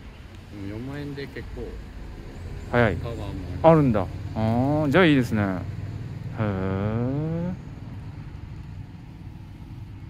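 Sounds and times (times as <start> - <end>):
low outdoor rumble: 0.0 - 10.0
man's drawn-out vocal sound: 6.4 - 7.6.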